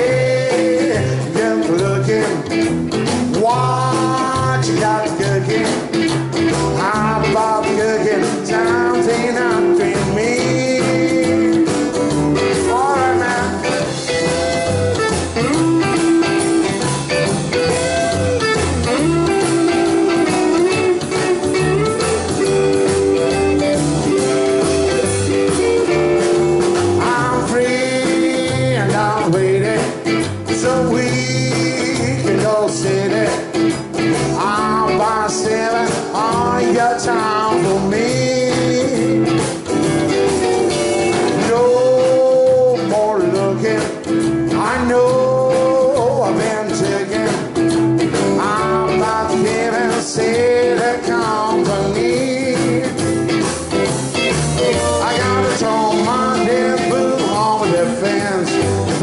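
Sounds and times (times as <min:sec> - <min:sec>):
rockabilly band playing live: 0:00.0 - 0:59.0.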